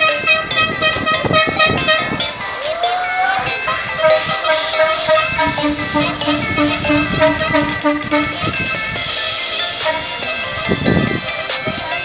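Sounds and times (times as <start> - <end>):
repeating high pitched notes: 0.0 - 2.4, 3.6 - 10.6
tone sliding upward: 3.7 - 8.7.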